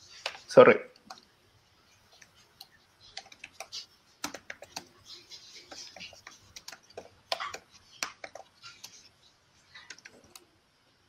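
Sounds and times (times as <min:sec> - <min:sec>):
faint typing on computer keyboard: 0:00.0 - 0:10.6.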